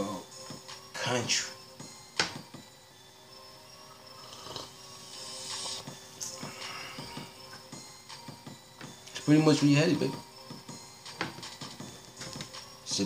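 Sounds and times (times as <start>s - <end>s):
faint background music: 0.0s - 13.0s
man drinking: 4.2s - 7.0s.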